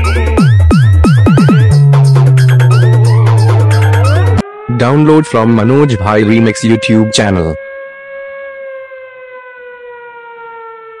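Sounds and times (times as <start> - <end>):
siren-like wail sinking in pitch: 0.4 - 11.0.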